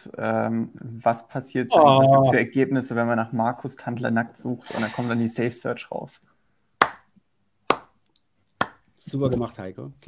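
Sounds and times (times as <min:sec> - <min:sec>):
hand claps: 0:06.8 - 0:07.1, 0:07.7 - 0:08.0, 0:08.6 - 0:08.8.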